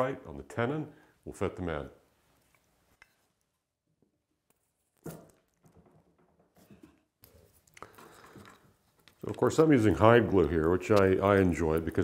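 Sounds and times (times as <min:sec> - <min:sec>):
faint handling of wooden parts: 0:02.3 - 0:12.0.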